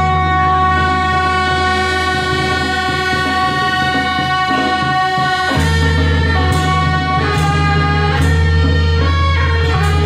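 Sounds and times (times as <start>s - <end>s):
wind instruments holding note: 0.0s - 10.0s.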